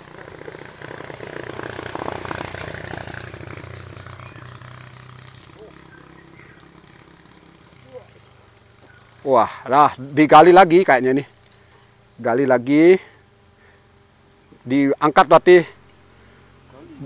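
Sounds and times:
vehicle engine passing by: 0:00.0 - 0:11.3.

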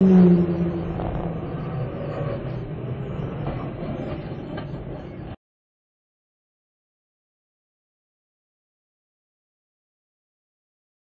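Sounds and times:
car engine and road rumble: 0:00.0 - 0:05.2
low drone: 0:00.0 - 0:05.4.

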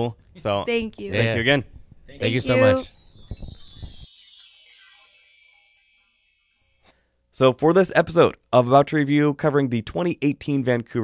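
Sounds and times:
shimmering chime cascade: 0:02.4 - 0:06.9.

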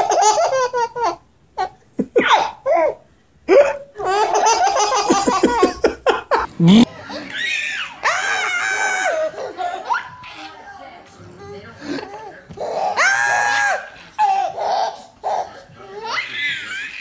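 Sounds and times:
baby laughing: 0:00.0 - 0:10.6, 0:11.4 - 0:17.0.

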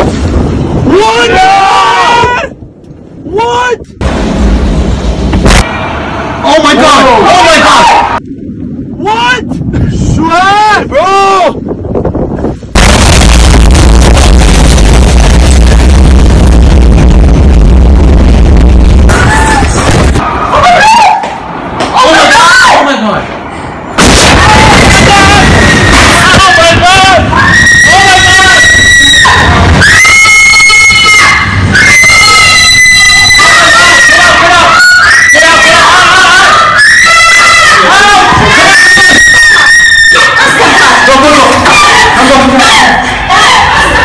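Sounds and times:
huge explosion boom: 0:04.0 - 0:05.9, 0:12.7 - 0:20.3, 0:24.0 - 0:27.4
distorted bass-heavy roar: 0:04.0 - 0:08.2, 0:12.8 - 0:20.6, 0:23.3 - 0:44.0.

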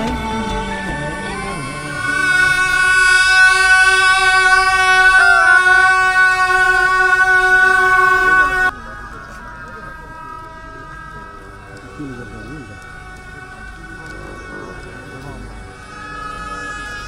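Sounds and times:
double-reed horns held note: 0:00.0 - 0:17.0
faint reedy tones: 0:00.0 - 0:17.0.

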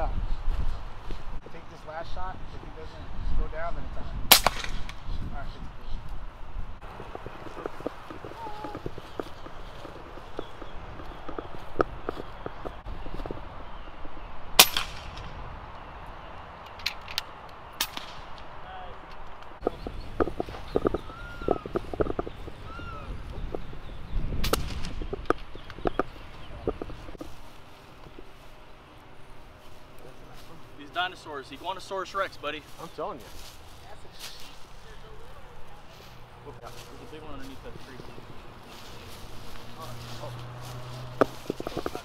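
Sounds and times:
air rifle shots: 0:04.3 - 0:05.0, 0:14.6 - 0:15.3, 0:17.8 - 0:18.4, 0:24.4 - 0:25.0.

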